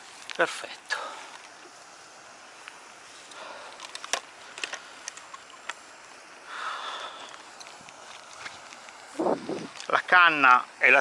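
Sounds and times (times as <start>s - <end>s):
fishing gear clicks and rustles: 2.8s - 6.0s, 7.0s - 10.1s.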